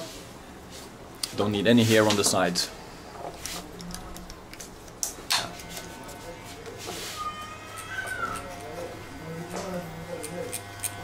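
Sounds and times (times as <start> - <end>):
electric hair clippers humming: 5.3 - 6.6, 7.5 - 11.0
high-pitched call: 7.0 - 8.5.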